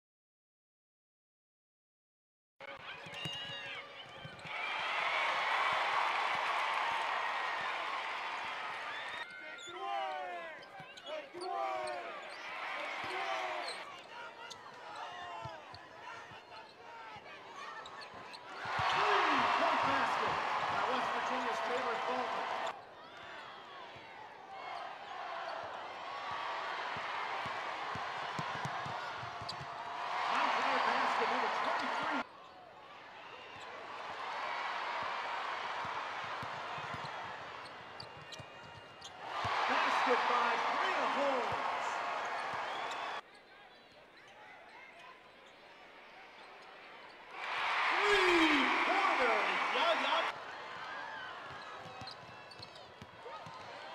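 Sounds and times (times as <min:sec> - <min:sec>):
arena crowd noise: 0:02.6 - 0:53.9
sneakers squeaking on floor: 0:10.6 - 0:12.4, 0:28.4 - 0:29.7, 0:36.4 - 0:39.2, 0:51.5 - 0:53.7.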